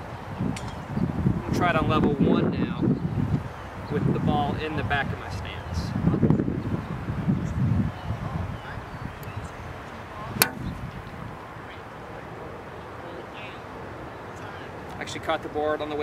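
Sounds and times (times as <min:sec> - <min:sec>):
club catching plastic board: 0:10.4 - 0:11.0
golf club striking ball: 0:10.4 - 0:11.2.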